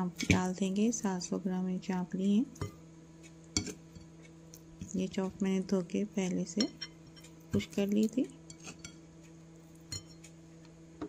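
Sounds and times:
faint steady hum: 0.0s - 11.0s
clink against ceramic plate: 9.9s - 10.2s.

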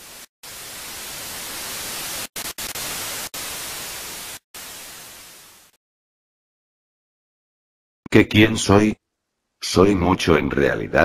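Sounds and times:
television static hiss: 0.0s - 5.7s.

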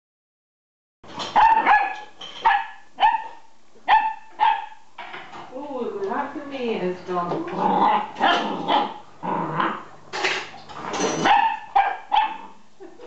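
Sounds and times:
puppy yapping: 1.3s - 4.8s, 7.8s - 9.0s, 11.2s - 12.6s.

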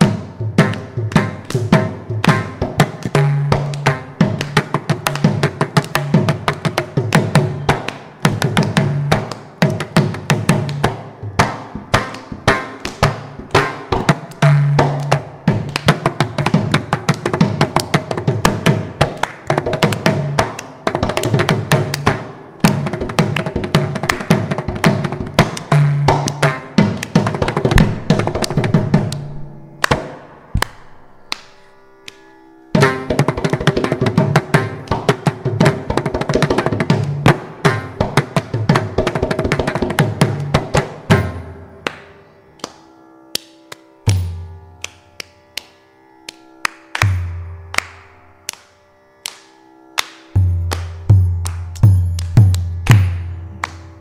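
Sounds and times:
hand drums percussion solo: 0.0s - 31.3s, 32.8s - 41.6s, 50.4s - 53.9s.

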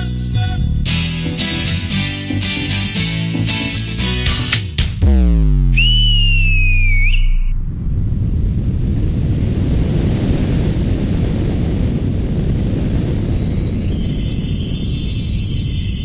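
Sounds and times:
steady low rumbling noise: 5.0s - 16.0s
high squealing tone: 5.8s - 7.6s.

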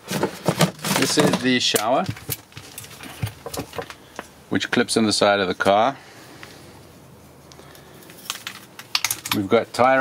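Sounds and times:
metal hose and items clicking: 7.5s - 10.0s.

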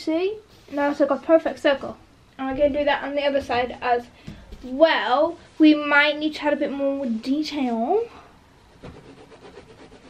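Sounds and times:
pencil scratching on canvas: 8.7s - 10.0s.

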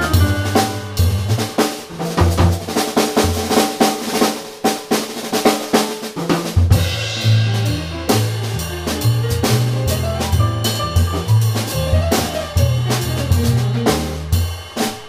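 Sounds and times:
walking bass line: 0.0s - 1.6s, 6.7s - 14.4s
jazz drum kit playing: 0.0s - 15.0s.

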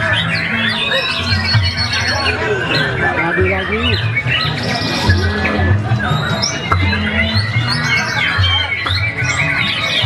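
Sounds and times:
birds singing whistled phrases: 0.0s - 10.0s.

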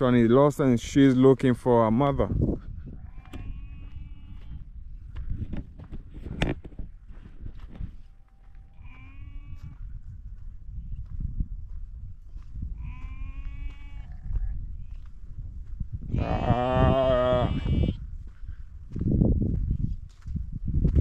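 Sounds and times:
young animal bleating: 3.0s - 4.6s, 8.6s - 9.8s, 12.8s - 14.4s, 16.1s - 18.0s.

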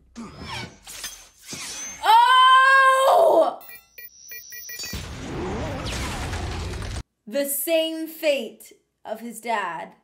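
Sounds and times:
rapid high beeps: 3.6s - 5.0s
explosion: 4.9s - 7.0s.

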